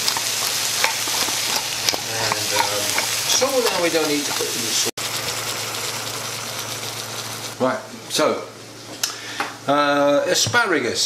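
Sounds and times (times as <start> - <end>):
chicken sizzling in a frying pan: 0.0 - 7.6.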